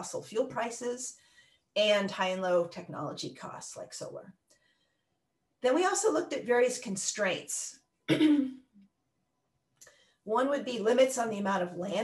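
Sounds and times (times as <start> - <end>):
woman clearing throat: 8.1 - 8.6.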